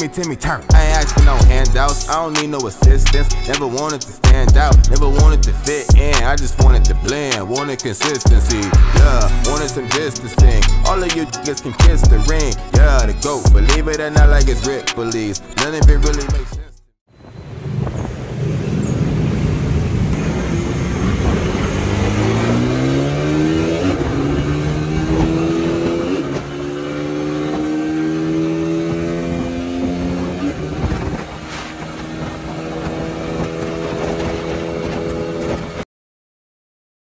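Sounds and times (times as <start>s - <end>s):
wind rushing: 4.4s - 10.8s, 17.2s - 26.7s, 28.7s - 35.8s
motorcycle engine accelerating: 8.2s - 14.6s, 17.5s - 35.8s.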